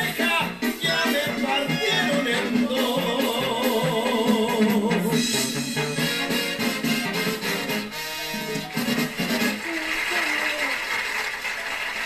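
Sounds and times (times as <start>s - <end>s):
banda music on television: 0.0s - 12.0s.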